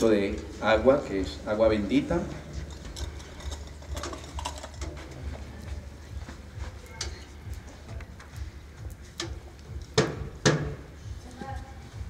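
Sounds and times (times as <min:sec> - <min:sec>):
metal clicks and clinks: 0:02.5 - 0:05.3.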